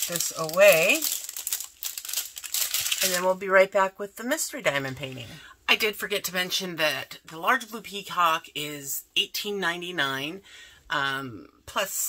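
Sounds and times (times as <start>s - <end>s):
plastic packets crinkling: 0.0s - 3.4s.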